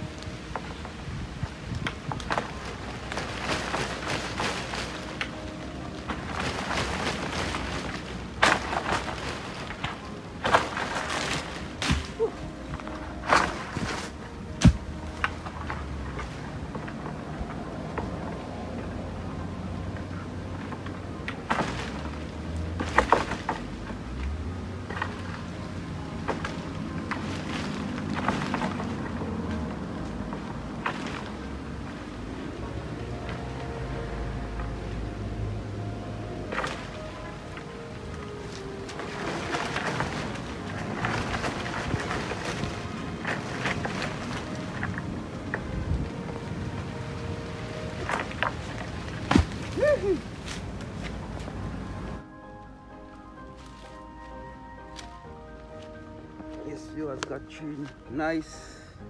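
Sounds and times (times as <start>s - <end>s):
palm fronds rustling: 0.0s - 59.0s.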